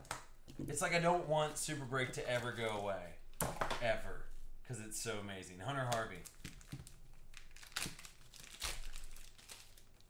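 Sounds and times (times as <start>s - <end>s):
plastic wrapper crinkling: 5.8s - 10.0s.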